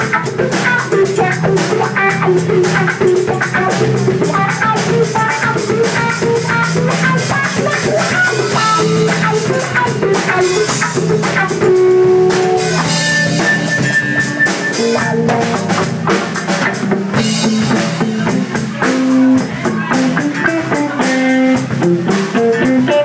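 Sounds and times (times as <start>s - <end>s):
choppy electric guitar: 0.0s - 23.0s
drum kit beat with cymbals: 0.0s - 23.0s.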